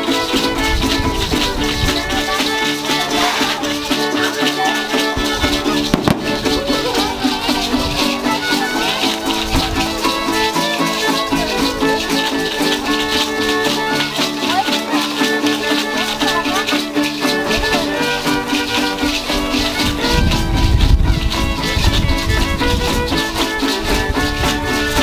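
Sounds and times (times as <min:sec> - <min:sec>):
fiddle: 0:00.0 - 0:25.0
plucked strings: 0:00.0 - 0:25.0
shaken rattles: 0:00.0 - 0:25.0.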